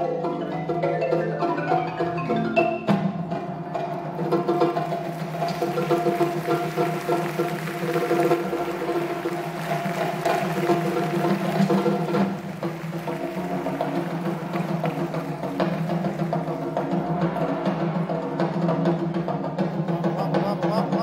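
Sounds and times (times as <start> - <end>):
marimbas playing rolled chords: 0.0 - 7.1.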